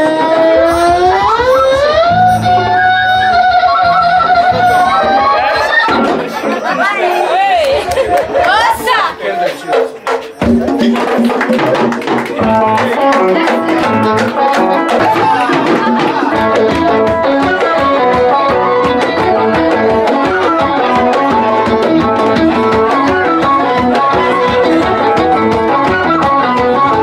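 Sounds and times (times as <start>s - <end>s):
hand drums: 0.0s - 27.0s
live band music: 0.0s - 27.0s.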